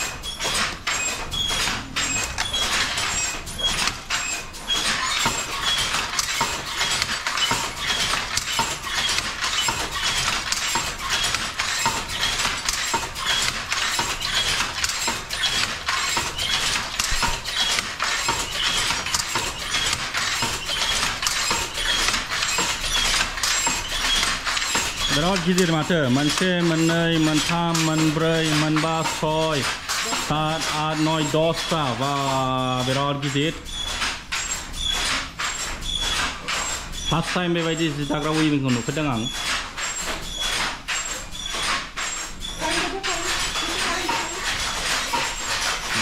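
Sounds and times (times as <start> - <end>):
wooden handloom clattering: 0.0 - 46.0.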